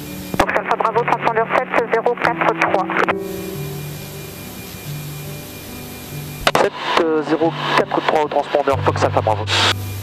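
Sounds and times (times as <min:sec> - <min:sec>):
radio hiss: 0:00.0 - 0:10.0
soft music of held low notes: 0:00.0 - 0:10.0.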